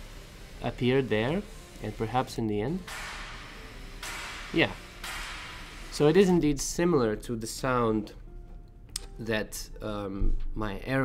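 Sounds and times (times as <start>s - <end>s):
faint machine hiss: 0.0s - 8.2s.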